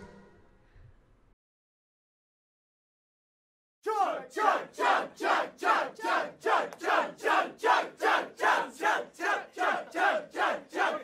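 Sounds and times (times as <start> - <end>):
group chanting: 3.9 - 11.0.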